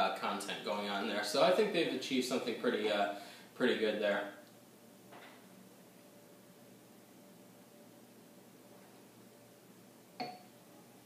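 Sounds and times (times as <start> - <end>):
glass clinking on countertop: 10.2 - 10.5.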